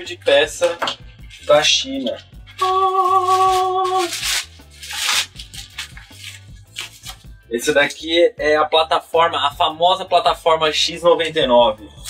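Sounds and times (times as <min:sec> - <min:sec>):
background music: 0:00.0 - 0:12.0
plastic mailer and bubble wrap crinkling: 0:02.5 - 0:07.2.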